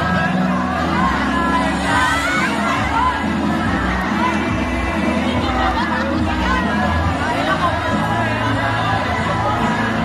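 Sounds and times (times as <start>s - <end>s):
crowd shouting and cheering: 0.0s - 10.0s
dance music over loudspeakers: 0.0s - 10.0s.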